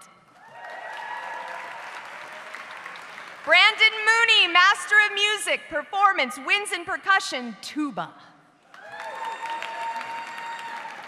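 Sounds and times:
audience applauding: 0.4s - 3.6s, 8.7s - 11.0s.

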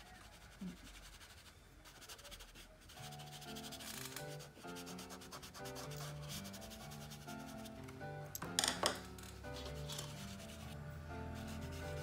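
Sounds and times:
fingertip rubbing pastel on paper: 0.0s - 7.8s, 9.6s - 12.0s
quiet background music: 0.0s - 12.0s.

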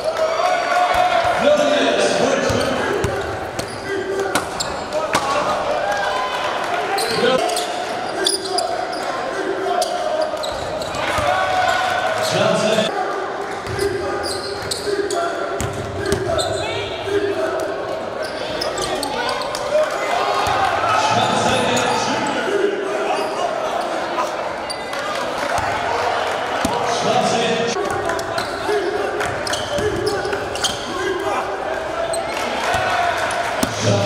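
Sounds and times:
voices of players and spectators: 0.0s - 34.0s
basketball bouncing on wooden court: 15.6s - 16.4s.

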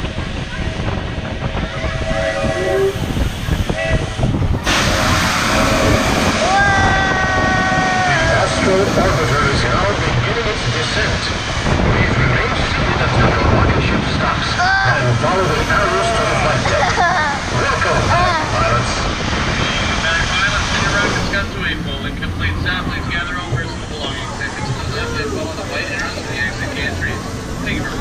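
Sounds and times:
voices: 0.0s - 28.0s
wind rushing over microphone: 0.0s - 28.0s.

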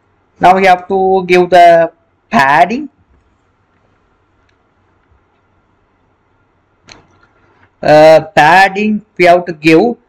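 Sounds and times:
faint microphone hiss: 0.0s - 10.0s
faint click: 3.1s - 5.5s.

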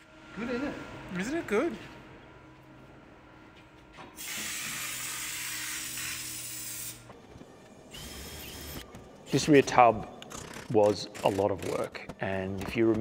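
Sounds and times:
spray gun hissing: 4.2s - 7.0s.

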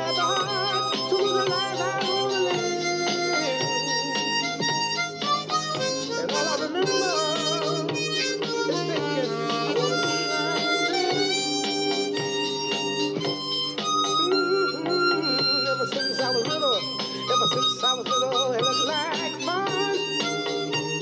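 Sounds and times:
harmonica playing: 0.0s - 21.0s
recorded backing track: 0.0s - 21.0s.

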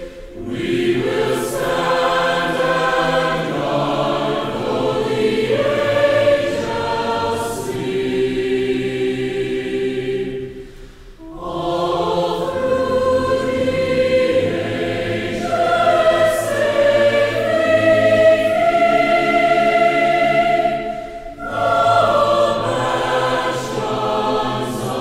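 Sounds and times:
choir singing held chords: 0.0s - 25.0s.

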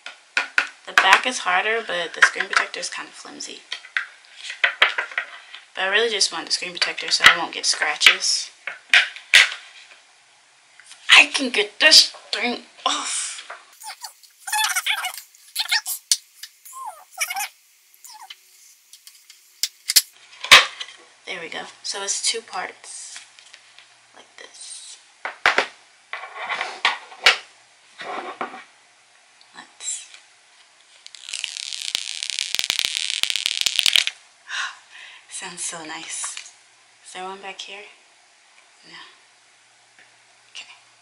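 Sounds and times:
plastic film being peeled off: 31.0s - 34.1s.

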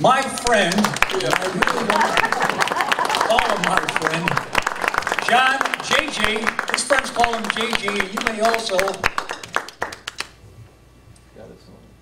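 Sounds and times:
audience clapping: 0.0s - 10.4s.

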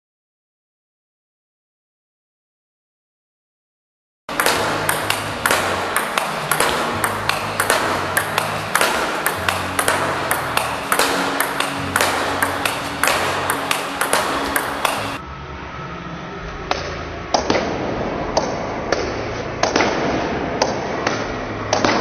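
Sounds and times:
table tennis ball clicks: 4.3s - 15.2s.

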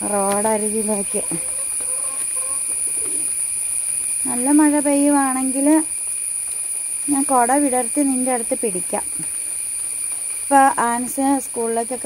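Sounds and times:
bird cooing: 0.0s - 3.5s.

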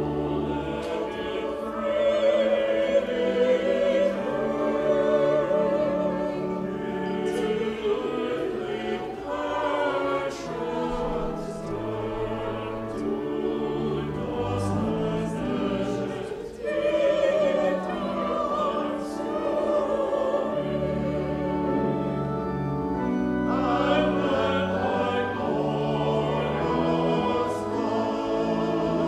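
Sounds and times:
choir singing in parts: 0.0s - 29.0s
sustained organ chords: 0.0s - 29.0s.

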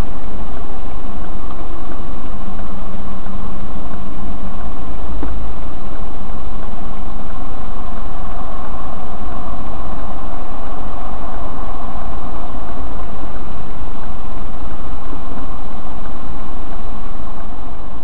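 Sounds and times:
vehicle engine and road noise: 0.0s - 18.0s.

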